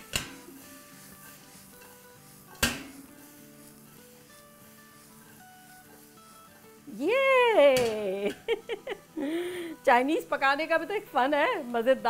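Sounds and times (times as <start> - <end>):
quiet background music: 0.0 - 12.0
wok clanking on stove grate: 2.5 - 3.1, 7.8 - 8.0.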